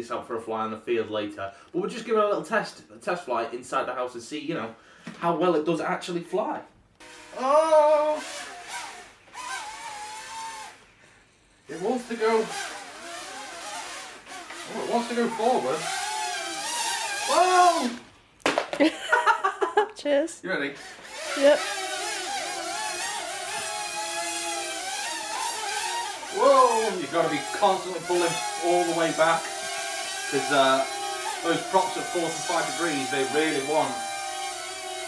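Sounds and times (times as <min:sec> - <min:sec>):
small drone motors whining: 0:07.0 - 0:10.8, 0:11.7 - 0:18.1, 0:20.8 - 0:35.0.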